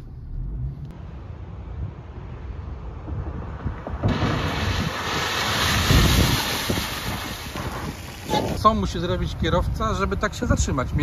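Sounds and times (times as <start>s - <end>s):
wind buffeting microphone: 1.4s - 11.0s.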